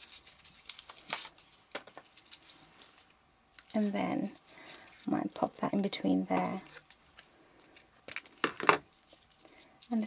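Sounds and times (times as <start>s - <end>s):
paper rustling and clicks: 0.0s - 5.0s, 6.5s - 10.0s.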